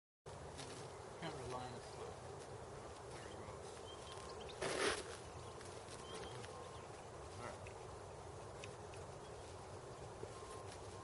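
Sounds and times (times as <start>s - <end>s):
outdoor background noise: 0.3s - 11.0s
steady insect-like buzz: 0.3s - 11.0s.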